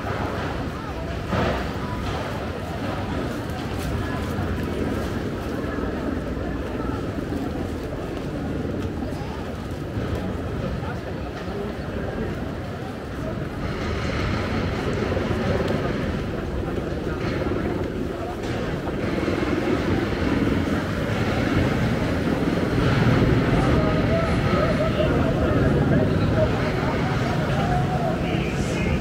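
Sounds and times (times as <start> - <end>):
crowd chatter: 0.0 - 29.0
steady traffic noise: 0.0 - 29.0.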